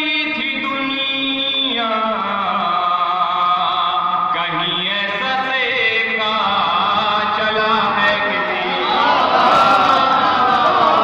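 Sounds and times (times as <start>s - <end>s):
man chanting into microphone: 0.0s - 9.0s.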